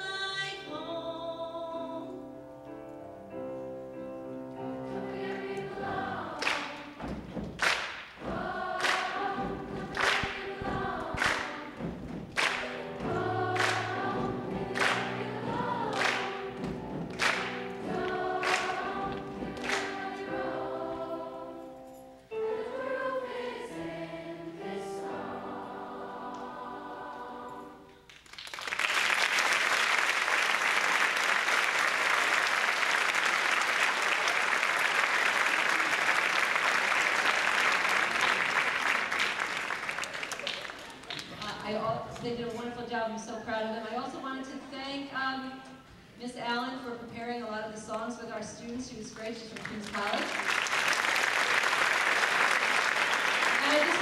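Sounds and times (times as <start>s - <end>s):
youth choir singing: 4.6s - 7.2s, 8.2s - 28.0s
audience applause: 8.7s - 20.2s, 28.1s - 41.5s, 49.6s - 54.0s.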